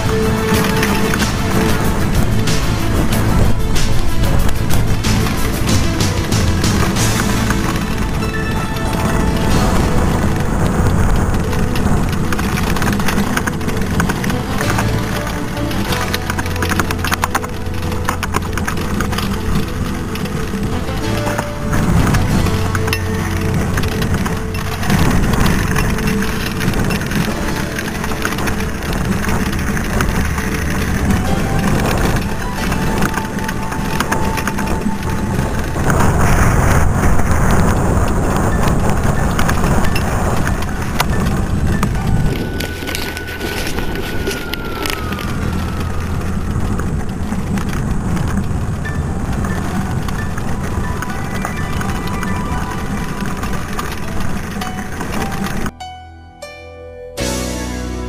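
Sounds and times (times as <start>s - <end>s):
wind buffeting camera: 0.0s - 55.7s
bike rattling over gravel: 0.0s - 55.8s.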